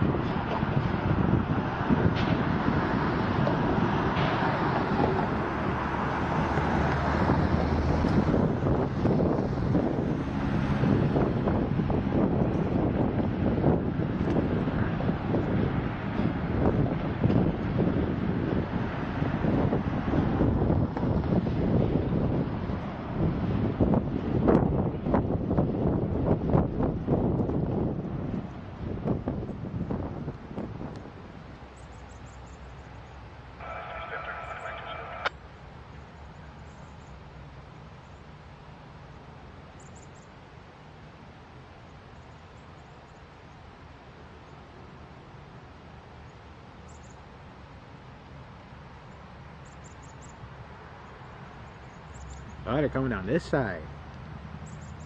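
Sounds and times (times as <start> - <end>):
wind on microphone: 0.0 - 31.6.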